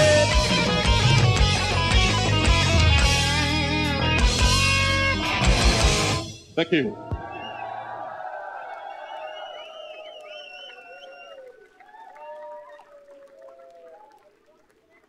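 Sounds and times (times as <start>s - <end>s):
concert crowd cheering and whooping: 7.0s - 14.4s.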